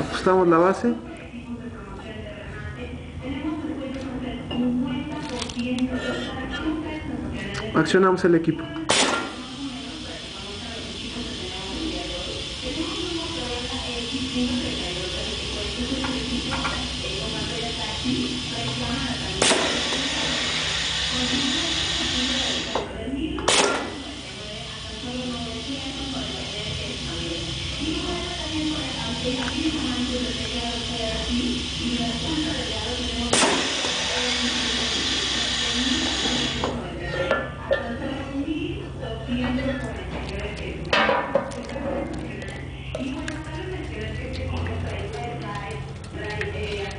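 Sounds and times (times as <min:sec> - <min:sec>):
compressed air hissing: 0:08.9 - 0:22.9, 0:23.5 - 0:36.8
valve and cylinder clicks: 0:29.3 - 0:30.6.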